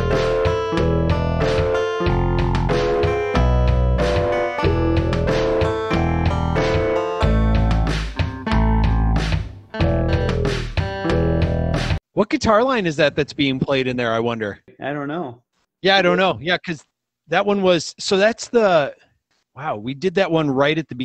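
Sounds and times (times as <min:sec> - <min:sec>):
low bass notes: 0:00.0 - 0:12.0
plucked guitar figure: 0:00.0 - 0:12.0.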